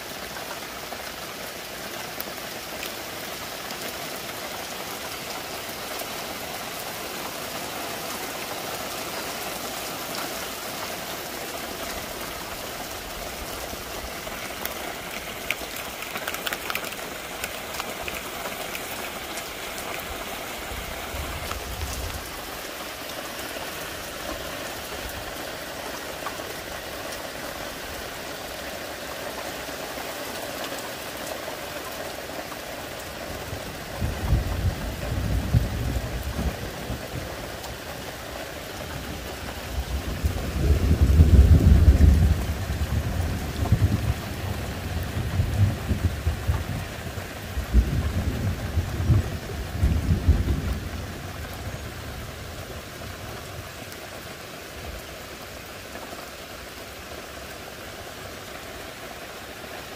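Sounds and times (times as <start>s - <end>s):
rain falling on trees: 0.0s - 59.9s.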